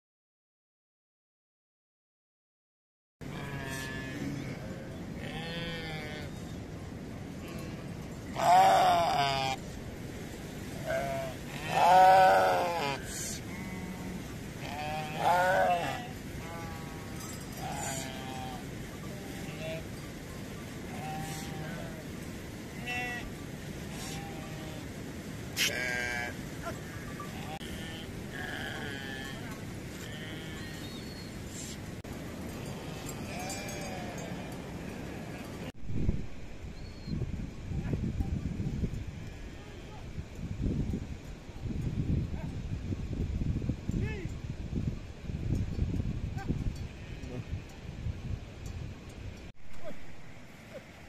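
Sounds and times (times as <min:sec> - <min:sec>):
sheep bleating: 0:03.3 - 0:06.4, 0:07.4 - 0:09.6, 0:10.8 - 0:19.9, 0:20.9 - 0:22.0, 0:23.9 - 0:24.9, 0:25.6 - 0:31.0, 0:32.9 - 0:34.6.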